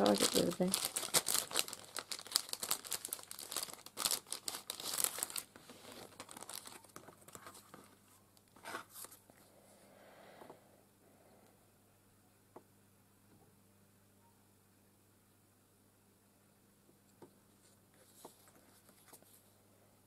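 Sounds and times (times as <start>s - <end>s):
cellophane bag crinkling: 0.0s - 9.1s.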